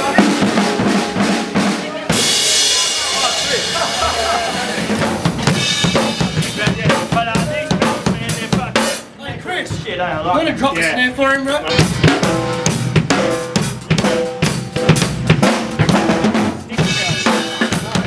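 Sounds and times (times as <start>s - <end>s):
drum kit grooves: 0.0s - 11.0s, 11.6s - 18.0s.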